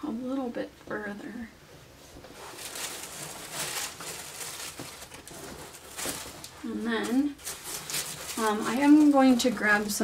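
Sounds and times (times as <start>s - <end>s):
fleece blankets rustling: 2.0s - 10.0s.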